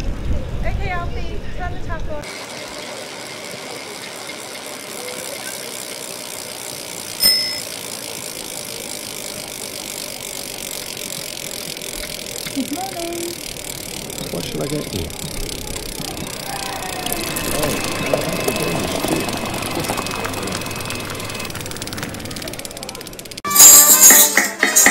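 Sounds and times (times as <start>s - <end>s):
passers-by's voices: 0.1s - 23.4s
bicycle bell ringing: 6.7s - 8.8s, 9.4s - 24.2s.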